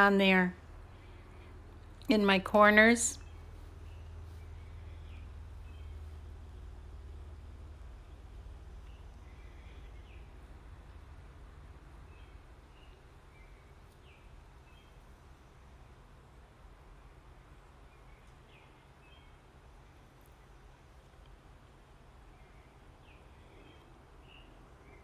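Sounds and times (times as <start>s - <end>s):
low background hum: 0.0s - 25.0s.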